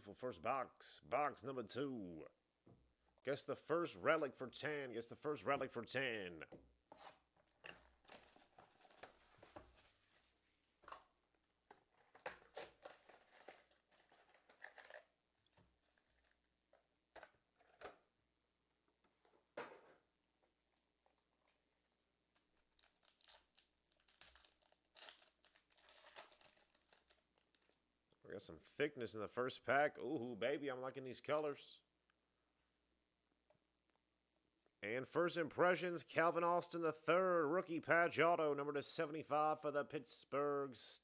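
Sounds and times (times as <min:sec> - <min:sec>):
wrapper crinkling and tearing: 0:07.6 - 0:10.3, 0:11.9 - 0:15.1, 0:22.3 - 0:27.8.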